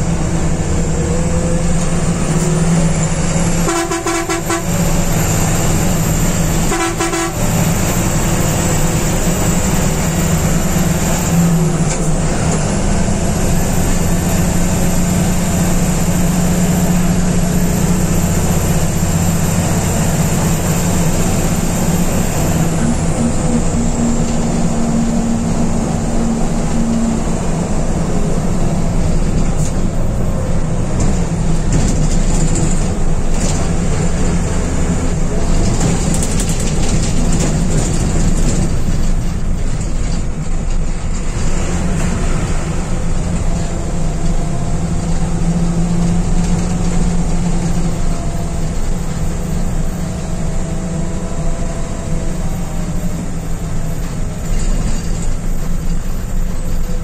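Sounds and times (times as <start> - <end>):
bus engine and road noise: 0.0 - 57.0
horn blasts: 3.5 - 5.6, 6.3 - 8.0.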